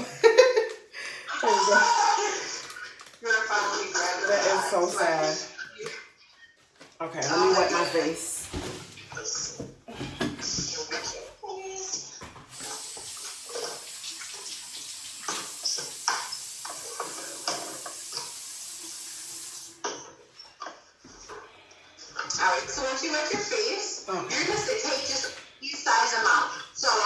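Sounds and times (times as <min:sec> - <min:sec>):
water splashing on face: 0:12.5 - 0:19.6
sink tap running: 0:12.5 - 0:19.9.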